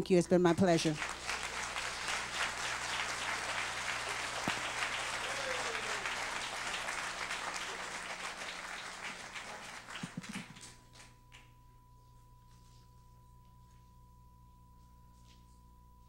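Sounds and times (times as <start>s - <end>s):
audience applauding: 0.8s - 11.5s.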